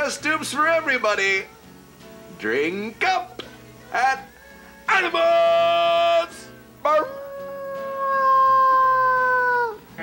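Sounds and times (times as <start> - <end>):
wolf-like howl: 6.9 - 9.8.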